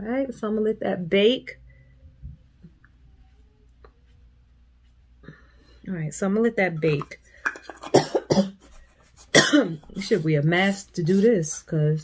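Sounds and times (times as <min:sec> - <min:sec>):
woman coughing: 0:07.8 - 0:08.7, 0:09.3 - 0:10.0.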